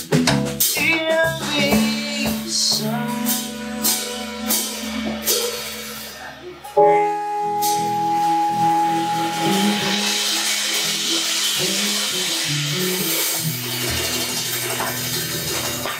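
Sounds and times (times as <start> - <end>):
bass guitar line: 0.0 - 15.9
cymbals wash: 1.4 - 15.9
electric guitar ringing note: 2.9 - 11.4.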